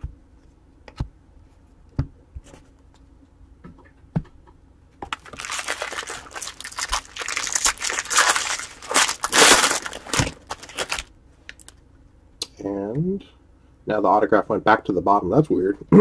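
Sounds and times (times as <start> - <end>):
foil wrapper crinkling: 5.0 - 11.7.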